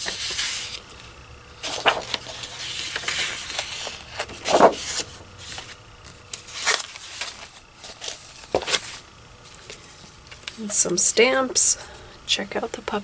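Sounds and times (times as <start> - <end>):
paper rustling and sliding: 0.0 - 10.6.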